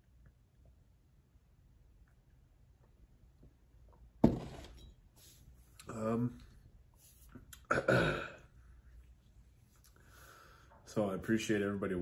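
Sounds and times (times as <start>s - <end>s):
man clearing his throat: 7.6s - 8.5s.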